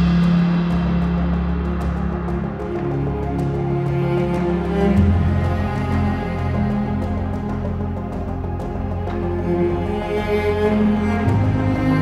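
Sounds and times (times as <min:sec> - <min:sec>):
held low note: 0:00.0 - 0:12.0.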